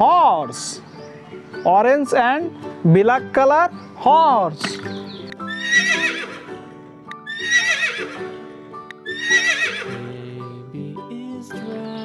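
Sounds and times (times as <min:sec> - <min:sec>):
background music: 0:00.0 - 0:12.0
horse whinnying: 0:05.4 - 0:06.6, 0:07.2 - 0:08.3, 0:09.0 - 0:10.0.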